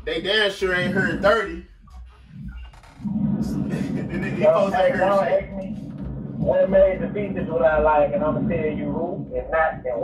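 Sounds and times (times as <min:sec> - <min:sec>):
man talking: 0:00.0 - 0:01.6, 0:03.5 - 0:05.6, 0:06.4 - 0:10.0.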